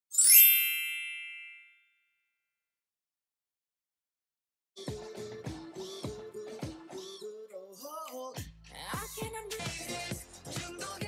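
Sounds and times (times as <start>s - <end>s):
shimmering chime ding: 0.1s - 2.0s.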